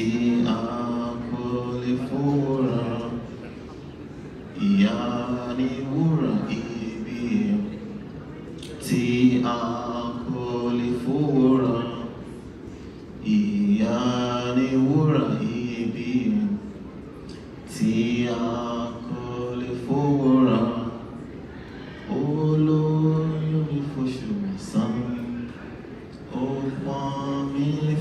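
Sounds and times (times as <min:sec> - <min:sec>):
man singing unaccompanied: 0:00.0 - 0:03.4, 0:04.6 - 0:07.8, 0:08.8 - 0:12.2, 0:13.2 - 0:16.6, 0:17.7 - 0:21.1, 0:22.1 - 0:25.4, 0:26.3 - 0:28.0.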